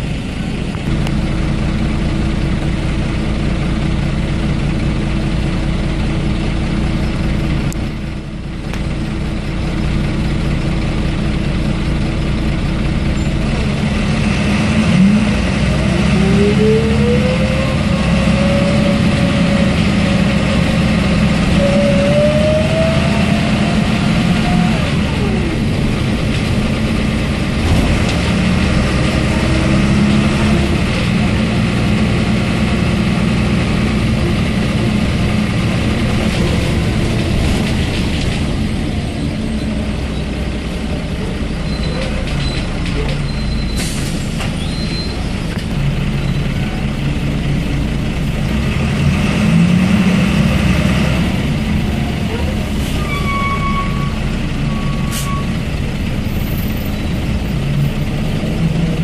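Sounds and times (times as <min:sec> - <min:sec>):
bus diesel engine droning: 0:00.0 - 0:59.0.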